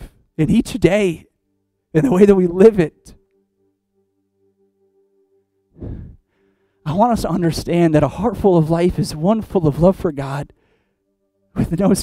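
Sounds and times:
man speaking: 0.4 - 1.3, 2.0 - 3.2, 6.9 - 10.5, 11.6 - 12.0
keyboard pad chords: 0.5 - 9.8, 10.8 - 12.0
man sighing: 5.8 - 6.4.

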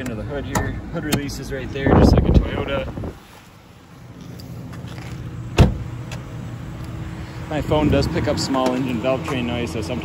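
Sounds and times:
car door shutting: 5.0 - 6.3.

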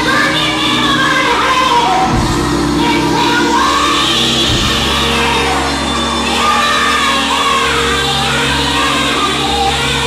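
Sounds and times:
crowd singing and shouting: 0.0 - 10.0
held chords: 0.0 - 10.0
woman singing into microphone: 0.0 - 10.0.

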